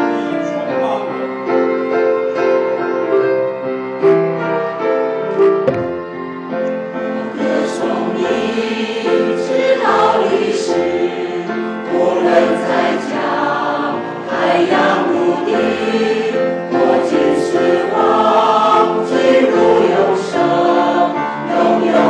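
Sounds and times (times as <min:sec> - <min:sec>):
piano accompaniment: 0:00.0 - 0:22.0
microphone handling bump: 0:05.6 - 0:06.2
choir singing a hymn: 0:06.7 - 0:22.0.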